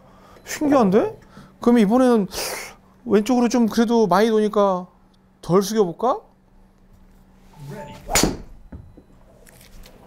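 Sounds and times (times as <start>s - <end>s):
golf club striking ball: 8.1s - 8.6s.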